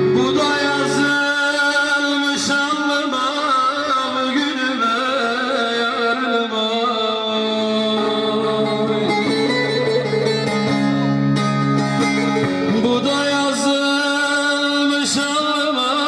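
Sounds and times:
plucked-string melody: 5.4s - 16.0s.

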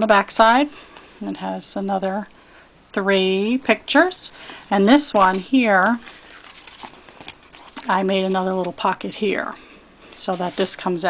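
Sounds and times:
woman's voice: 0.0s - 2.3s, 2.9s - 6.1s, 7.8s - 9.6s, 10.2s - 11.0s
paper album page handling: 4.5s - 8.8s, 10.2s - 10.8s.

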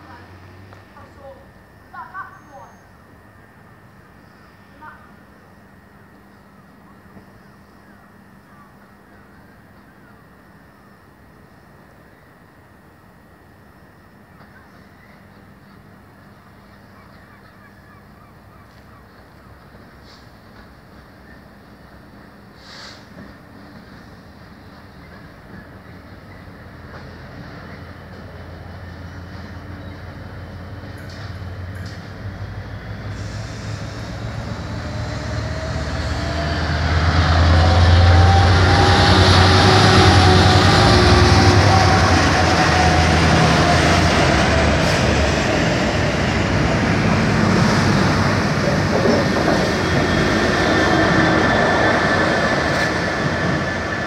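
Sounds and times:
diesel locomotive engine: 0.0s - 54.0s.

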